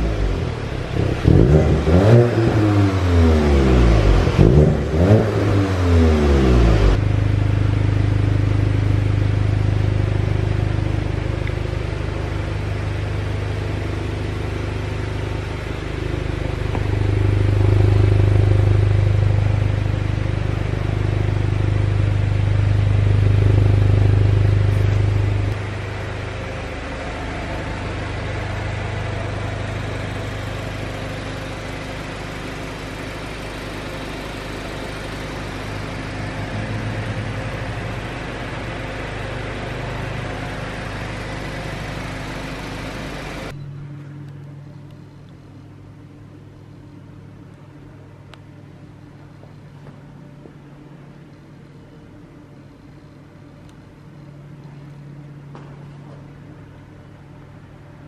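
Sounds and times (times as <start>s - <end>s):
car engine revving: 0.0s - 43.6s
car engine idling: 0.0s - 58.0s.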